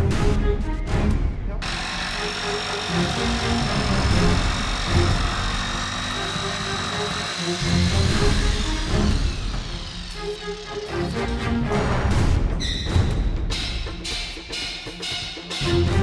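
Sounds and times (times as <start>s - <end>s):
background music: 0.0s - 16.0s
electric jigsaw cutting: 1.6s - 11.4s.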